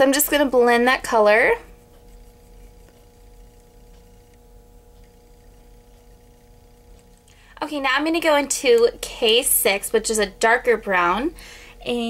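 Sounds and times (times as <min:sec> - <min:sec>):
faint steady tones: 0:00.0 - 0:12.0
steady low hum: 0:00.0 - 0:12.0.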